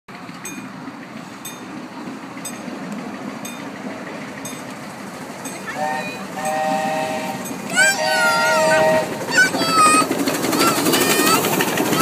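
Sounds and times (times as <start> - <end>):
train rumbling: 0.1 - 12.0.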